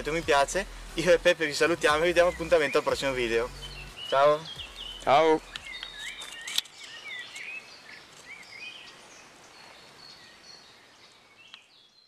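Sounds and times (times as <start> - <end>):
songbirds chirping: 0.0 - 12.0
sharp click: 5.5 - 7.5.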